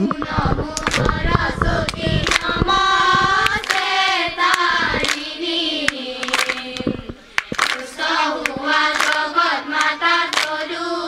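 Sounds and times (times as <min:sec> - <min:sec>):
girls singing in unison: 0:00.0 - 0:11.0
hand claps: 0:00.1 - 0:10.7.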